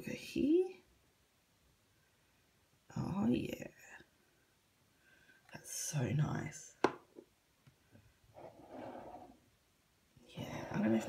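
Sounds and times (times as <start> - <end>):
person breathing softly: 4.2 - 5.5.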